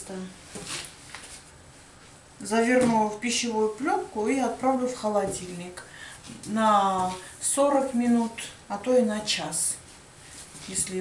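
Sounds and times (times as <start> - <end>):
woman speaking: 0.0 - 0.4, 2.4 - 9.9, 10.6 - 11.0.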